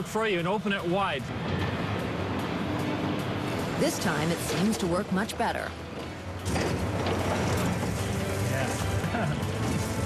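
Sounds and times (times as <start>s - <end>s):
excavator engine drone: 0.0s - 10.0s.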